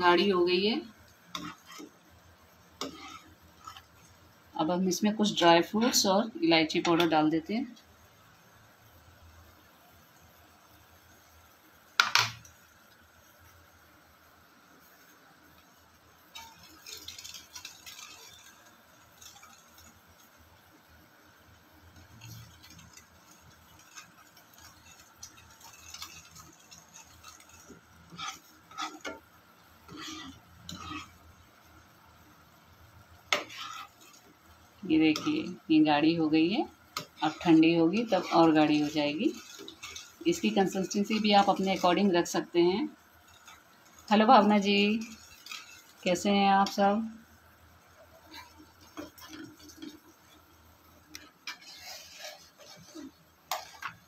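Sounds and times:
spoon stirring thick milk: 0:00.8 - 0:04.2, 0:16.3 - 0:20.3, 0:21.9 - 0:31.8, 0:33.2 - 0:46.8, 0:48.1 - 0:54.0.

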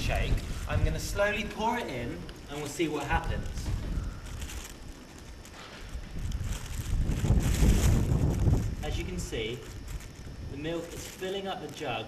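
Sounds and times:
wind rumbling on microphone: 0:00.0 - 0:11.3.

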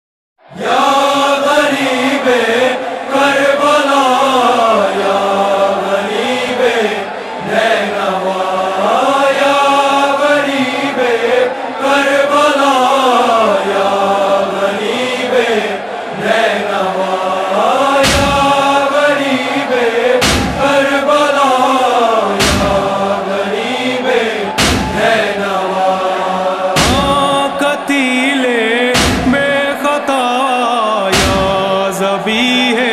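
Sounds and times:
men chanting a lament: 0:00.5 - 0:32.9
deep thumps: 0:18.0 - 0:18.7, 0:20.2 - 0:20.9, 0:22.4 - 0:23.0, 0:24.6 - 0:25.2, 0:26.8 - 0:27.4, 0:29.0 - 0:29.6, 0:31.2 - 0:31.7.

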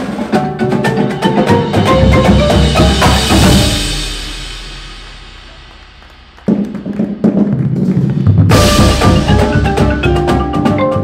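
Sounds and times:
marching drums playing: 0:00.0 - 0:11.0
low bass drum notes: 0:01.6 - 0:10.8.

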